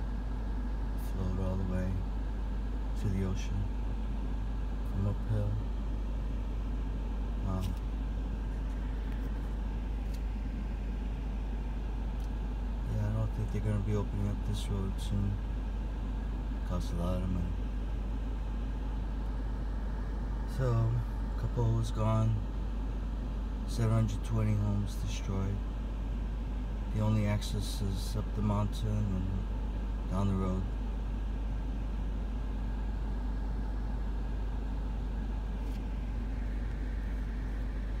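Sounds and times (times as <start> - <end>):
car engine idling: 0.0 - 38.0.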